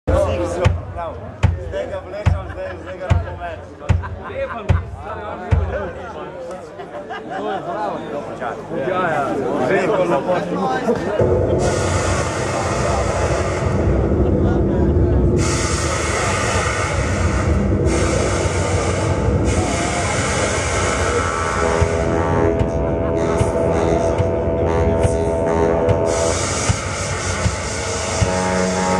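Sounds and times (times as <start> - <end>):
hard drum hits: 0.6 - 2.5, 11.2 - 28.9
band playing loud distorted music: 11.1 - 28.9.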